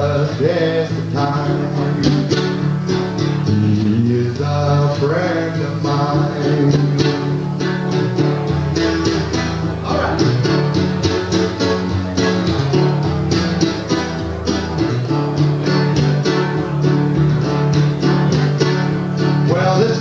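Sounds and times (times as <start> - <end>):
guitar picked and strummed: 0.0 - 20.0
man singing blues: 0.0 - 20.0.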